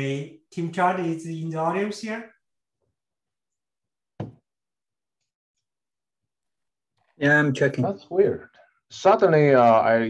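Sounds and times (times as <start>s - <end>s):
short knock: 4.2s - 4.4s.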